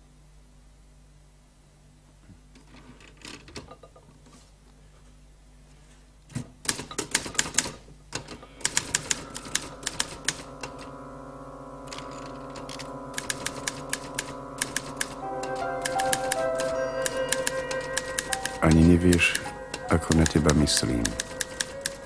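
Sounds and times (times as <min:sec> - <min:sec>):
typewriter keys clicking: 0:06.7 - 0:10.9, 0:11.9 - 0:22.0
soft background music: 0:14.7 - 0:22.0.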